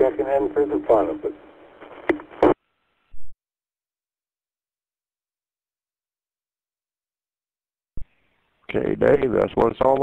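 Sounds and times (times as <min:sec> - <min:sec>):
radio noise burst: 0:00.0 - 0:02.6.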